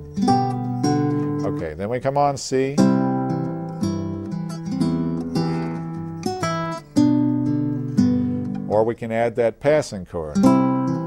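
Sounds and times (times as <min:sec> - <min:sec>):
fingerstyle acoustic guitar: 0:00.0 - 0:08.9, 0:10.3 - 0:11.0.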